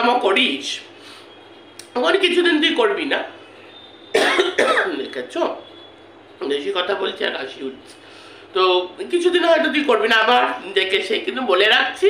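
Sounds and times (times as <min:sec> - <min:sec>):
woman coughing: 0:04.1 - 0:05.0.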